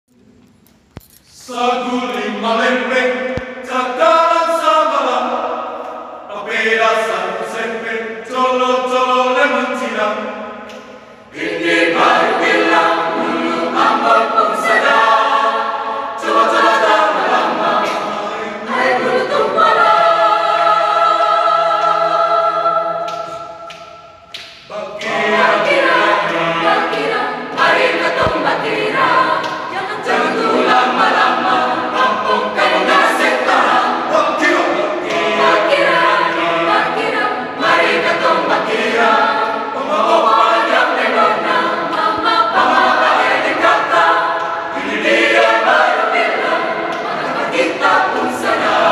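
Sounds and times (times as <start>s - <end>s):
mixed choir singing a cappella: 1.3s - 48.9s.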